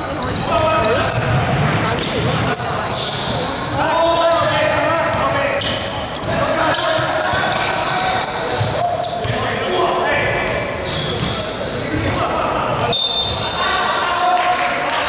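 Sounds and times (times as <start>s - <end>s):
players calling out: 0.0s - 15.0s
sneakers squeaking: 0.0s - 15.0s
basketball bouncing: 0.2s - 2.6s.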